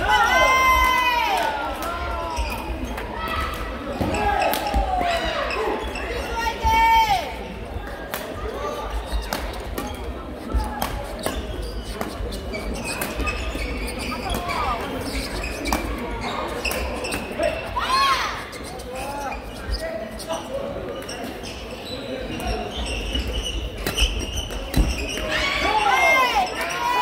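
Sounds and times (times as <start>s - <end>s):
sneakers squeaking on floor: 2.3s - 7.4s, 8.7s - 26.9s.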